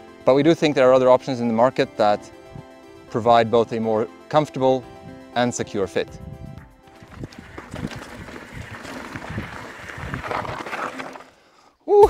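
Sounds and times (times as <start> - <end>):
bike knocking and rattling: 6.6 - 11.3
bike tyres crunching over rock: 6.8 - 11.5.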